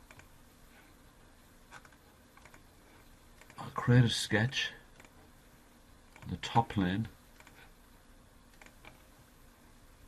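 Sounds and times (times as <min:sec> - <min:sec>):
computer mouse clicks: 0:00.0 - 0:00.3, 0:01.7 - 0:02.7, 0:03.4 - 0:03.6, 0:05.0 - 0:05.2, 0:06.1 - 0:06.4, 0:07.4 - 0:07.7, 0:08.5 - 0:09.1.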